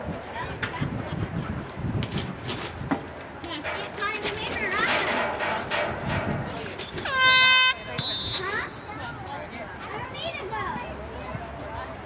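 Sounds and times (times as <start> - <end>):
air horn blast: 7.1 - 8.4.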